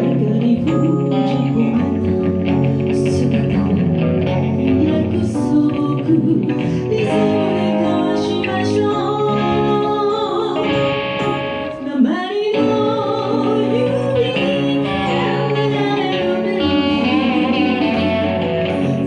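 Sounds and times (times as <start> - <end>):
guitar accompaniment: 0.0 - 19.0
woman singing blues: 0.0 - 19.0.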